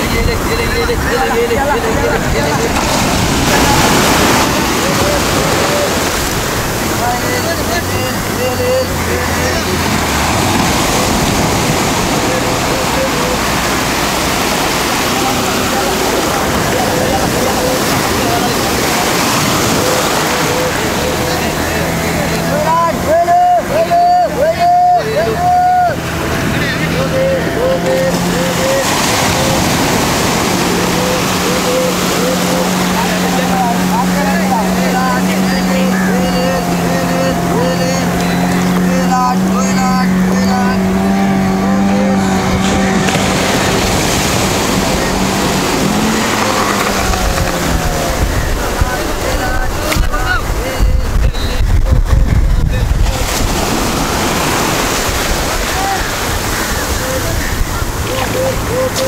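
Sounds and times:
fishermen chanting: 0:00.0 - 0:59.0
surf washing in: 0:00.0 - 0:59.0
wind rumble on microphone: 0:25.8 - 0:59.0.

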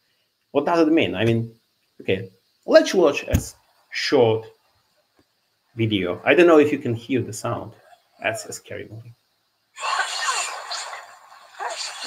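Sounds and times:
harsh hissing sound: 0:09.7 - 0:12.0.

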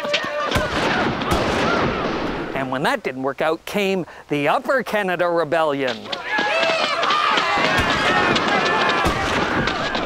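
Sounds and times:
running footsteps: 0:00.0 - 0:02.4, 0:05.8 - 0:10.0
thuds: 0:05.9 - 0:10.0.

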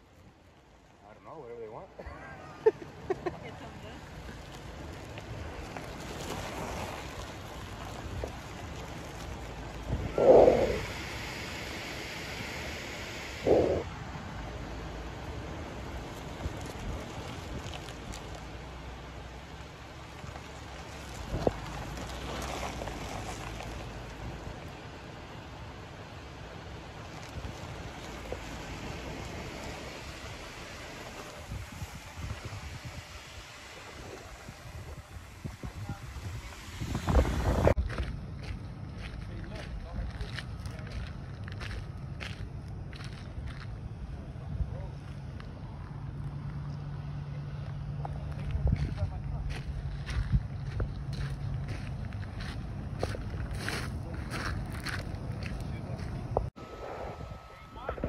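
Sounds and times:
faint off-road vehicle engines: 0:00.0 - 0:58.0
low engine hum: 0:00.0 - 0:58.0
wind buffeting microphone: 0:04.1 - 0:11.6, 0:27.3 - 0:45.0, 0:48.2 - 0:58.0.

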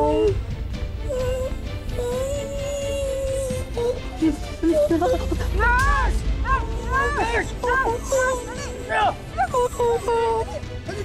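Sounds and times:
woman whimpering and moaning: 0:00.0 - 0:00.4, 0:01.0 - 0:05.6, 0:06.4 - 0:11.0
background music: 0:00.0 - 0:11.0.

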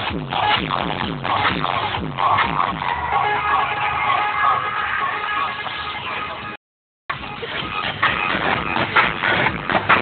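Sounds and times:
loud distorted music: 0:00.0 - 0:10.0.

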